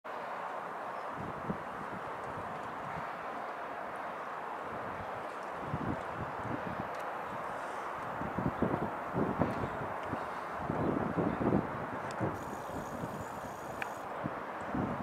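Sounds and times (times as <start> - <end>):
outdoor background hiss: 0.1 - 15.0
wind gusts buffeting microphone: 0.7 - 15.0.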